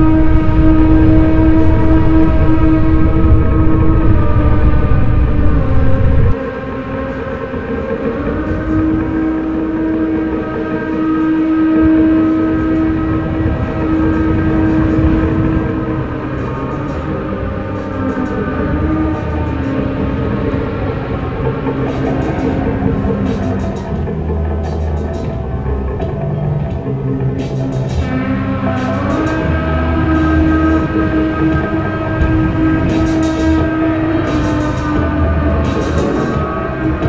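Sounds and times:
deep rumble: 0.0 - 37.0
layered droning tones: 0.0 - 37.0.

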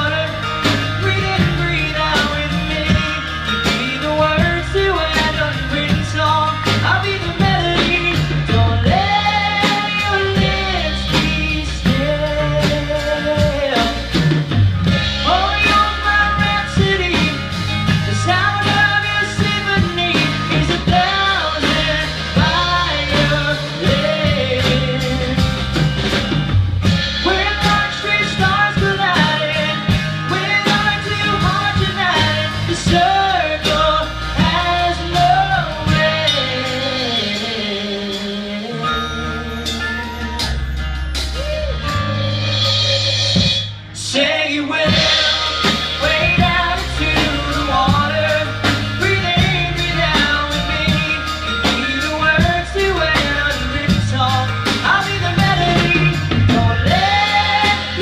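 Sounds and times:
man singing: 0.0 - 26.0, 27.0 - 40.8, 41.4 - 58.0
live rock band: 0.0 - 58.0.

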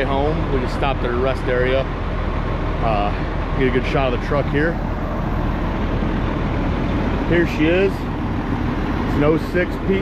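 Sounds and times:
low rumble of vehicle noise: 0.0 - 10.0.

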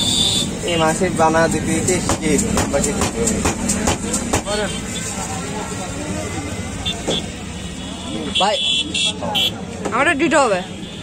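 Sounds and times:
roadside traffic: 0.0 - 11.0.

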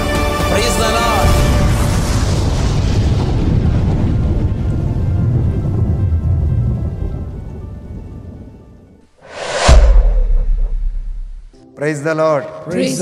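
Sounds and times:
deep boom: 1.2 - 6.7, 9.3 - 11.6
low rumble: 9.2 - 11.6
rising whoosh: 9.2 - 11.6.

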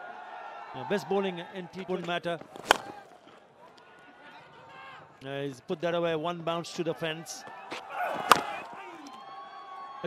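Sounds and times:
faint stadium crowd noise: 0.0 - 10.0.

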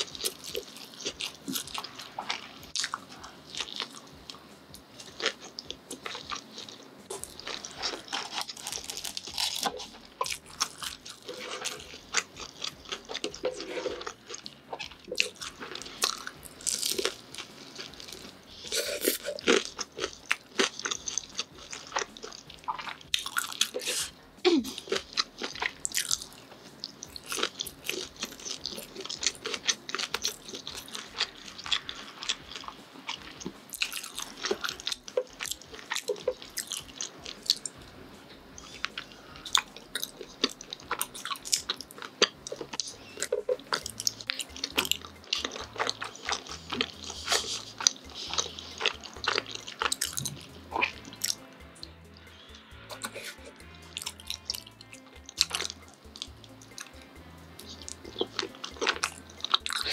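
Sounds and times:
wet chewing: 0.0 - 59.9
sticky mouth clicks and smacks: 52.9 - 59.9.

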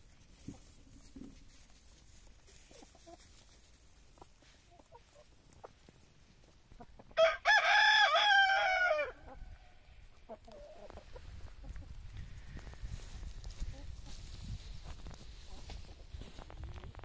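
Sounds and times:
rooster crowing: 7.2 - 9.2.

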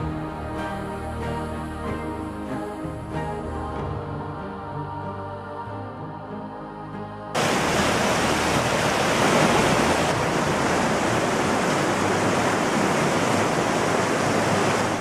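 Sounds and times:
river rushing over rocks: 7.4 - 15.0.

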